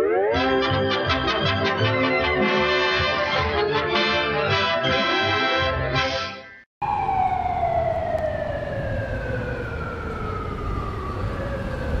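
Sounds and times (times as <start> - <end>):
tone sliding down in pitch: 0.0 - 3.6.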